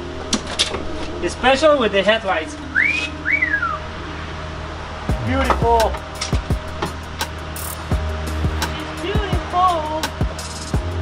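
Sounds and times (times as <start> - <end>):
man wolf whistling: 2.7 - 3.9.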